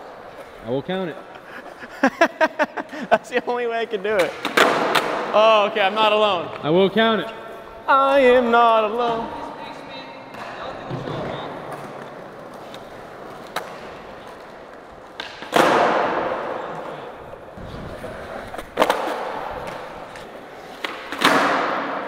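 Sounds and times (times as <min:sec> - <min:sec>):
skateboard wheels rolling on concrete: 0:00.0 - 0:22.0
skateboard clacking on floor: 0:04.2 - 0:05.2, 0:10.3 - 0:16.6, 0:18.5 - 0:22.0.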